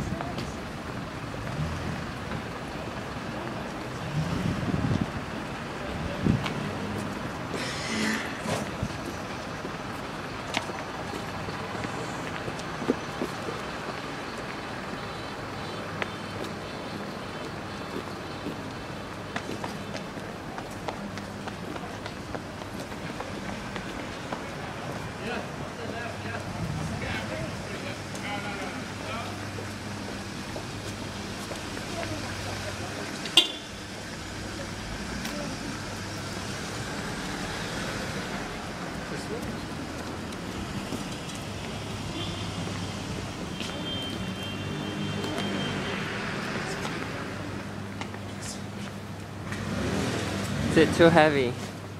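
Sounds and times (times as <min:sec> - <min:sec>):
footsteps on pavement: 0:00.0 - 0:51.9
low street hum: 0:00.0 - 0:51.9.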